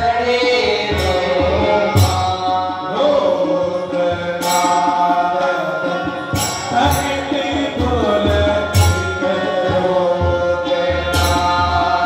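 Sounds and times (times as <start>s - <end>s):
percussion: 0.0s - 12.0s
sharp percussive hit: 0.2s - 12.0s.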